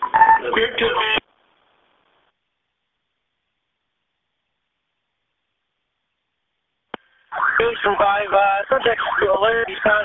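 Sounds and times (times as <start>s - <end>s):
faint radio tone: 0.0s - 10.0s.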